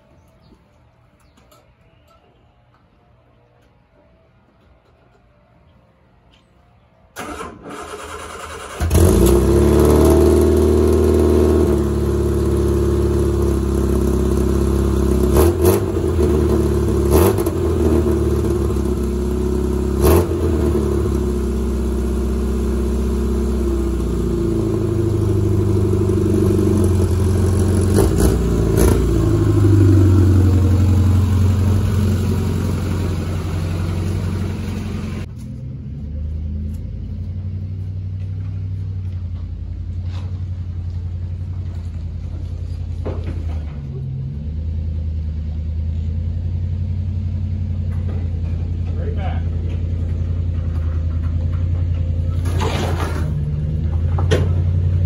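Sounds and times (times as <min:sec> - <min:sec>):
engine starter cranking: 0:07.1 - 0:09.6
car engine idling: 0:07.2 - 0:55.0.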